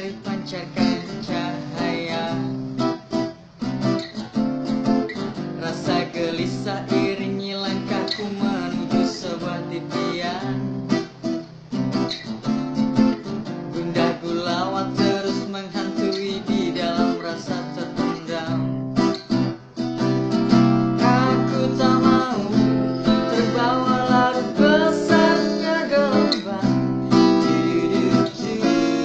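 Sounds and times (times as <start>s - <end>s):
man singing: 0.0s - 2.8s, 5.6s - 11.0s, 13.7s - 18.8s, 21.0s - 29.0s
acoustic guitar strumming: 0.0s - 29.0s.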